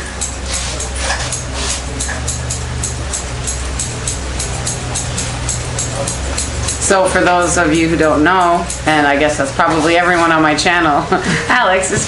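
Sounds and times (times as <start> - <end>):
background music with steady beat: 0.0 - 12.0
low bass line: 0.0 - 12.0
crisp high ticks: 0.1 - 9.6.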